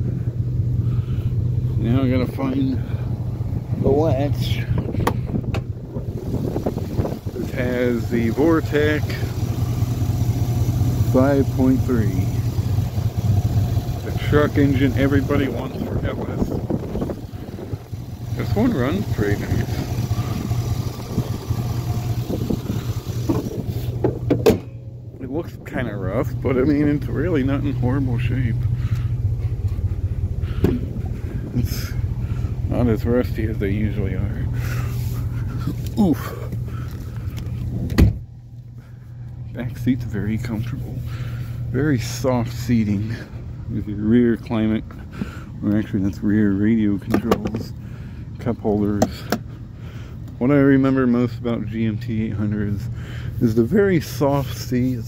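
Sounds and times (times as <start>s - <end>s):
engine idling: 0.0s - 55.0s.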